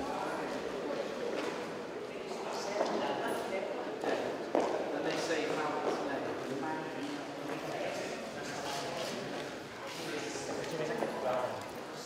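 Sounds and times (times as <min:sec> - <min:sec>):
indistinct chatter in echoing hall: 0:00.0 - 0:12.0.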